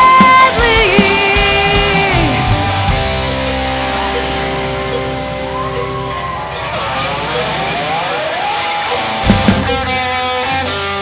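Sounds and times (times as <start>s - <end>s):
drum hits: 0.0s - 10.3s
distorted electric guitar chord: 0.0s - 11.0s
sliding guitar notes: 0.0s - 11.0s.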